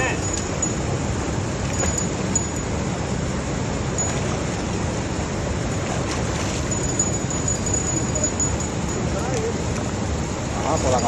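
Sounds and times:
water rushing from a pipe: 0.0s - 11.0s.

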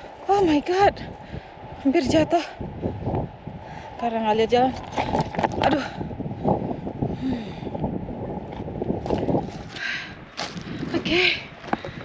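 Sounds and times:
wind rumbling on microphone: 0.0s - 12.0s
heavy breathing: 5.8s - 7.8s, 9.6s - 11.0s
person exhaling: 7.1s - 7.7s.

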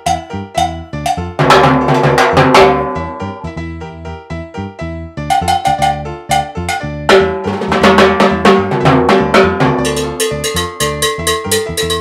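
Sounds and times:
cowbell struck with stick: 0.0s - 3.5s, 5.3s - 7.5s, 9.2s - 12.0s.

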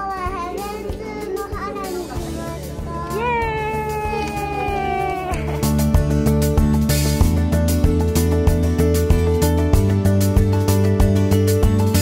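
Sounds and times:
child's sing-song calls: 0.0s - 4.8s
background music: 0.0s - 12.0s.

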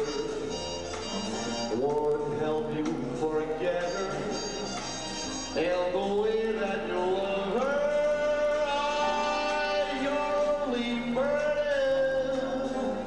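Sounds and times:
musical accompaniment: 0.0s - 13.0s
man singing a ballad: 1.7s - 4.7s, 5.5s - 13.0s.

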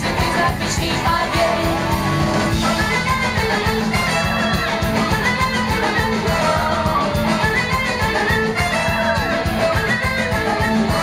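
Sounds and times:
electric guitar: 0.0s - 11.0s
live rock band: 0.0s - 11.0s.

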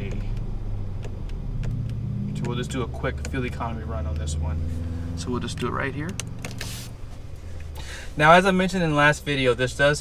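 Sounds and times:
car cabin hum idling: 0.0s - 10.0s.

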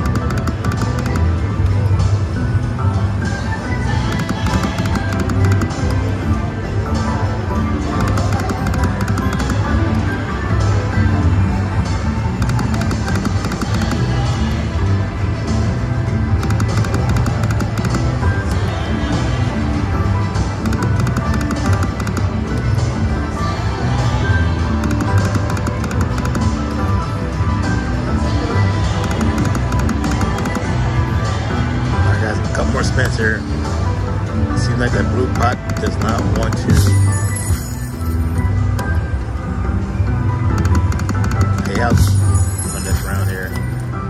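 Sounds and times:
loud background music with beat: 3.1s - 43.7s
slot machine clicks and chimes: 4.1s - 6.2s, 7.8s - 10.1s, 12.4s - 14.2s, 16.4s - 18.3s, 24.8s - 26.8s, 28.9s - 30.8s, 35.2s - 39.0s, 40.4s - 43.9s.

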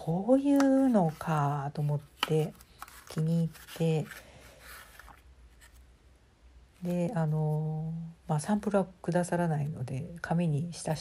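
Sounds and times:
woman speaking: 0.0s - 4.2s, 6.8s - 11.0s
paper rustling: 0.6s - 5.9s.

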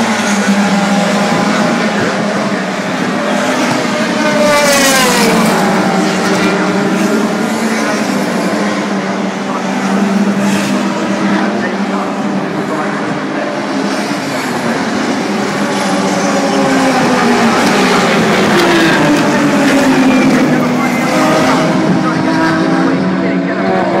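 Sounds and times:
racing car engines passing: 0.0s - 24.0s.

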